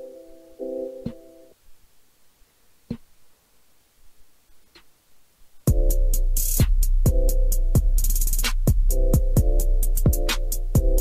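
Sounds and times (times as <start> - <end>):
electronic keyboard chord: 0.0 - 1.6, 5.7 - 11.0
sharp beat: 5.7 - 11.0.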